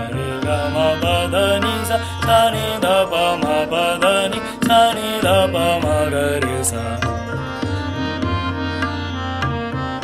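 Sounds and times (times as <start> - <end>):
tabla playing: 0.0 - 10.0.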